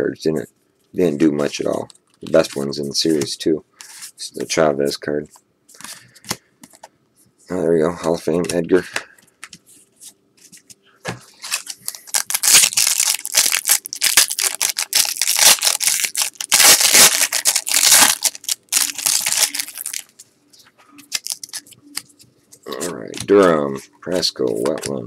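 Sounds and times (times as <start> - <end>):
foil wrapper crinkling and tearing: 11.4 - 20.2, 21.1 - 22.0.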